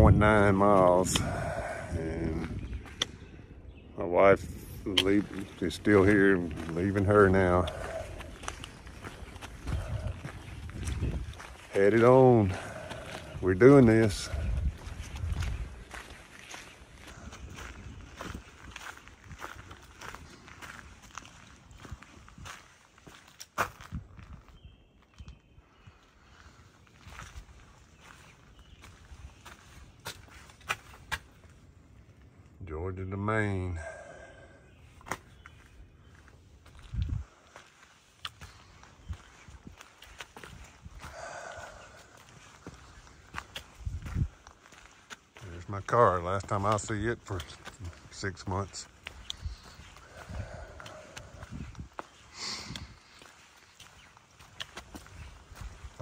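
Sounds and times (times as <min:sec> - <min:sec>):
footsteps on dead leaves: 0:05.1 - 0:24.4, 0:35.1 - 0:56.0.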